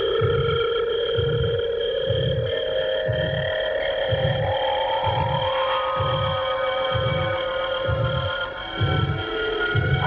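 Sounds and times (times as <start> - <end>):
low throbbing pulse: 0.0 - 10.0
sustained drone tones: 0.0 - 10.0.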